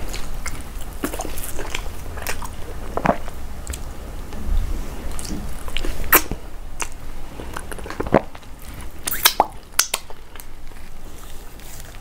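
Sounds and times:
wet chewing clicks and smacks: 0:00.0 - 0:03.9, 0:05.1 - 0:11.0.

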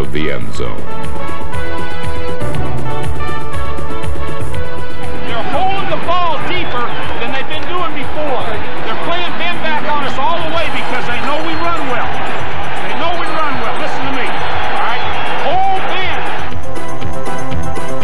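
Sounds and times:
background music: 0:00.0 - 0:18.0
crowd noise: 0:01.6 - 0:18.0
men shouting: 0:05.0 - 0:16.6.

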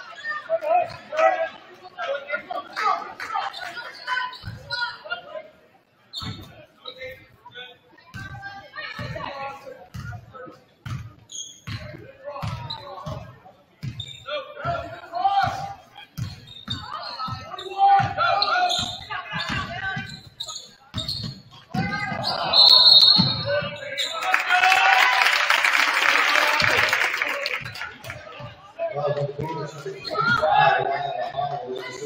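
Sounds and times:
loud crowd noise: 0:00.0 - 0:32.0
voices of players and spectators: 0:00.0 - 0:32.0
referee whistle: 0:22.2 - 0:24.4.

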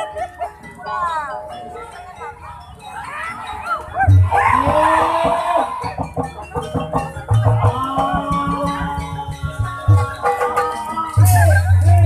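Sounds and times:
gamelan ensemble playing: 0:00.0 - 0:12.0
drum strokes: 0:04.0 - 0:12.0.

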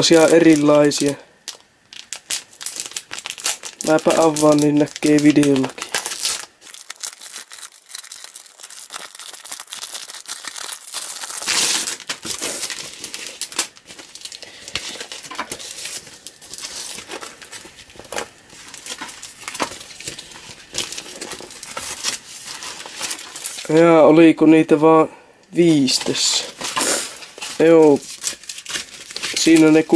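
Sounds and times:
plastic bag crinkling and tearing: 0:00.0 - 0:24.0, 0:25.7 - 0:29.9
paper sheets rustling: 0:02.0 - 0:24.0, 0:25.8 - 0:29.9.

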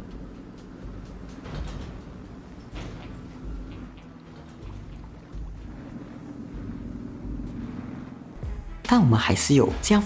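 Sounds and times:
car engine droning: 0:00.0 - 0:08.9.

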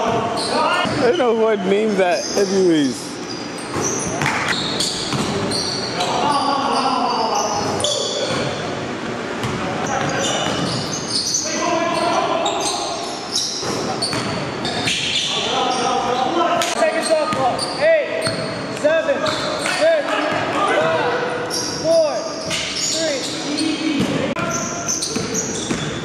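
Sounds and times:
sneakers squeaking: 0:00.0 - 0:26.0.

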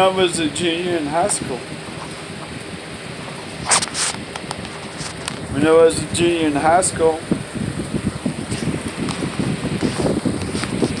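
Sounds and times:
rustling and rumbling on microphone: 0:00.0 - 0:11.0.

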